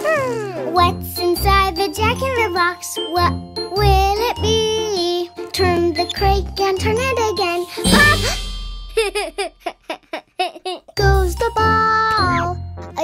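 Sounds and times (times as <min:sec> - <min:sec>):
child's voice: 0:00.0 - 0:08.4, 0:10.4 - 0:13.0
children's song music: 0:00.6 - 0:10.0, 0:10.8 - 0:13.0.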